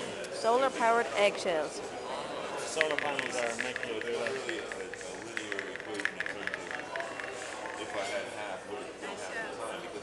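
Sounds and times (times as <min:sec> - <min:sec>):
people talking: 0:00.4 - 0:10.0
rapid light eggshell clicking: 0:02.7 - 0:08.1.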